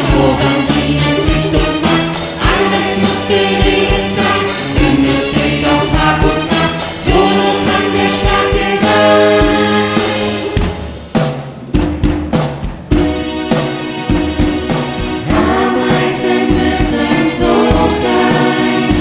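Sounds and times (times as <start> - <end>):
children's choir singing: 0.0 - 10.6, 15.2 - 19.0
pop band playing: 0.0 - 19.0.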